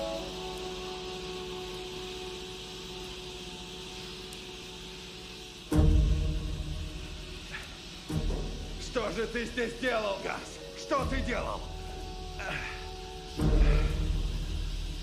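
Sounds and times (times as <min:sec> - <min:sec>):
film score sustained notes: 0:00.0 - 0:15.0.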